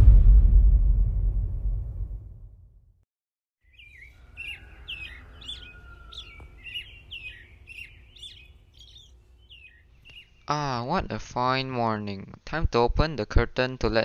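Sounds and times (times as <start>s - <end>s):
faint low rumble: 0.0s - 2.8s
small birds chirping: 3.6s - 10.8s.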